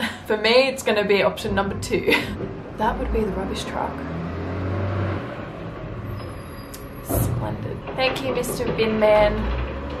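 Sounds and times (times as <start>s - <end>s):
truck engine rumbling: 0.0s - 10.0s.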